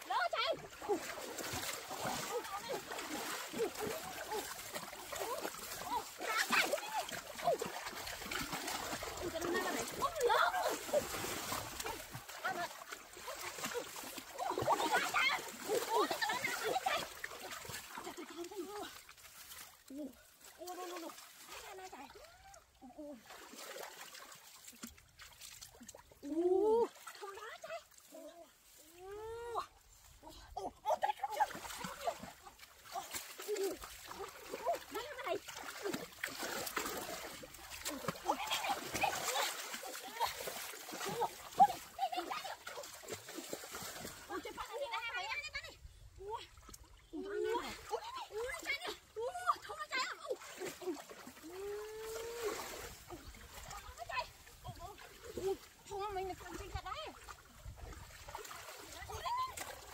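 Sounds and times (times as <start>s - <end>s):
stream water splashing: 0.0s - 59.9s.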